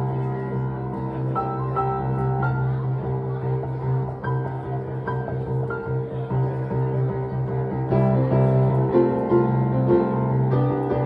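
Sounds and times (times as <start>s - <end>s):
acoustic piano chords: 0.0s - 11.0s.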